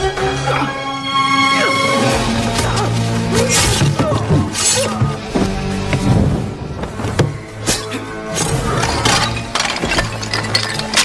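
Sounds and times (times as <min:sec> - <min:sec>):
film soundtrack music: 0:00.0 - 0:11.0.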